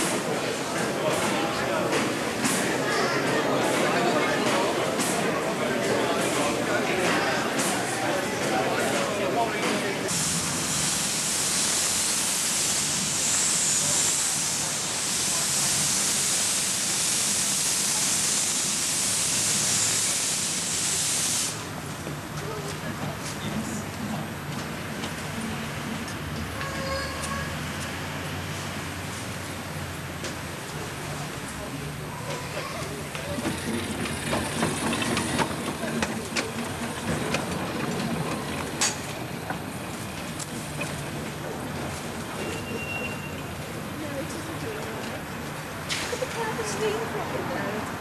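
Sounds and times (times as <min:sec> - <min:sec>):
steam locomotive venting steam: 0:00.0 - 0:21.9, 0:25.1 - 0:48.0
wheels clicking over rail joints: 0:32.2 - 0:46.5.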